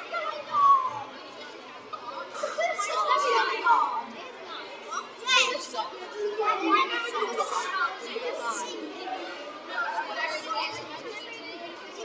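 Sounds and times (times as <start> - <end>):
crowd of children and adults talking: 0.0 - 12.0.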